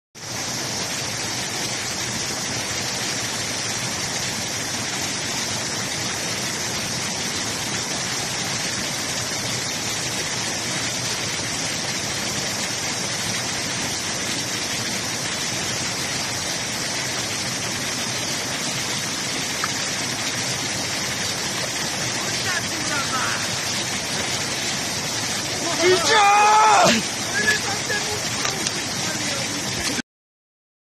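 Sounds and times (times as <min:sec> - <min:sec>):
mountain stream over rocks: 0:00.2 - 0:30.0.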